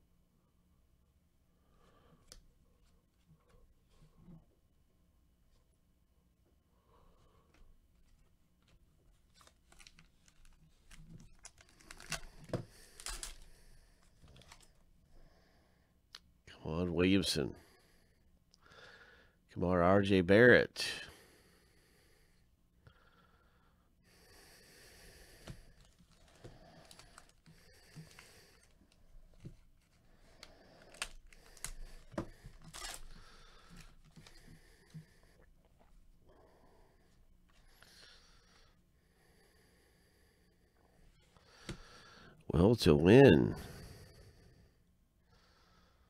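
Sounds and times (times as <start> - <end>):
foil wrappers crinkling: 9.3 - 13.5, 25.8 - 28.8, 30.3 - 34.4
wrapper tearing: 9.3 - 13.5, 25.8 - 27.4, 30.8 - 33.2.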